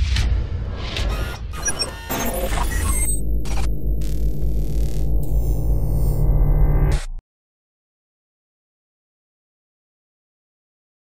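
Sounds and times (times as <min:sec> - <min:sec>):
deep bass: 0:03.0 - 0:07.2.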